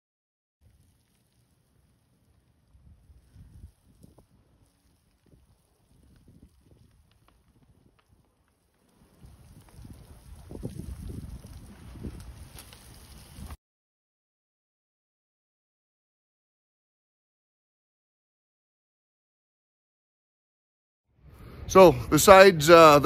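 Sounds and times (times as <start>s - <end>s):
fire crackling and popping: 0.6s - 13.6s
wind rumble on microphone: 1.6s - 13.6s.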